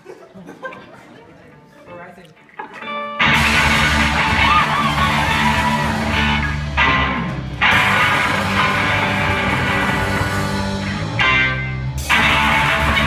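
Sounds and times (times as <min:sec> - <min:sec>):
electric guitars: 0:02.4 - 0:13.0
drum kit: 0:03.2 - 0:13.0.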